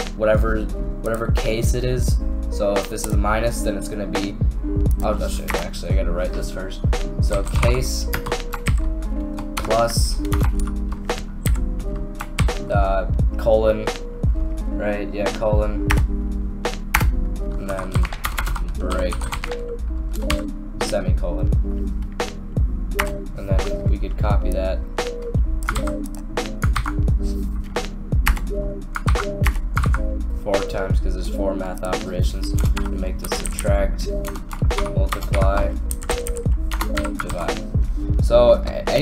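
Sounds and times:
background music with held notes: 0.0 - 39.0
keyboard keystrokes: 25.6 - 27.0.

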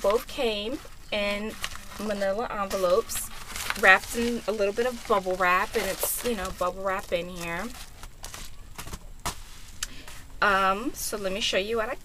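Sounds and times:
envelope and bubble wrap rustling: 0.0 - 11.1.

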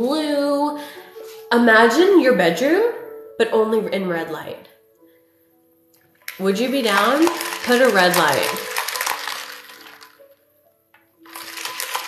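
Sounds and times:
low background music: 0.0 - 12.0.

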